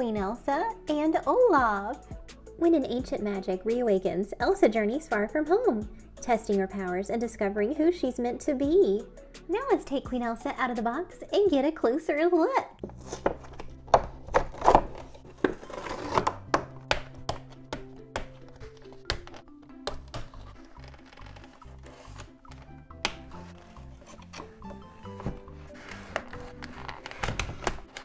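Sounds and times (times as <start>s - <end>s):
background music with low bass: 0.0s - 28.0s
handling plastic box packaging: 12.8s - 28.0s.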